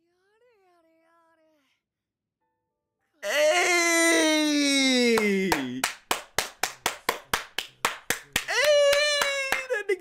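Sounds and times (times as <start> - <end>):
long held vocal cry: 3.2 - 5.9, 8.4 - 10.0
person clapping hands: 4.9 - 10.0.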